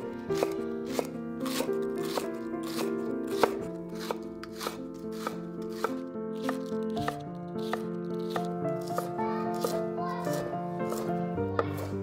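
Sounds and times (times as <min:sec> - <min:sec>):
knife slicing on wooden cutting board: 0:00.4 - 0:12.0.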